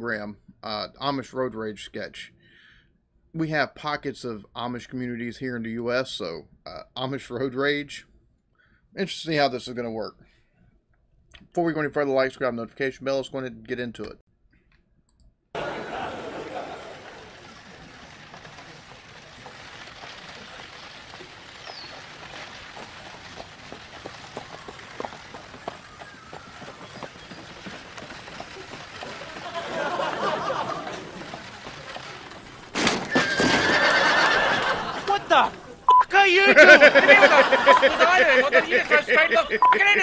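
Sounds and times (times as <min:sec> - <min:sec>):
steady outdoor noise haze: 0:15.6 - 0:33.1, 0:34.0 - 0:40.0
short sharp noisy burst: 0:15.6 - 0:34.8
horse neighing: 0:33.1 - 0:34.4.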